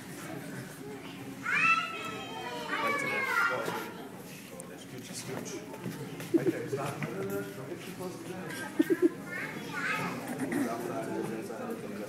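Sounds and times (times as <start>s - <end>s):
children chattering and calling out: 0.6s - 4.2s, 5.7s - 7.0s, 8.4s - 11.5s.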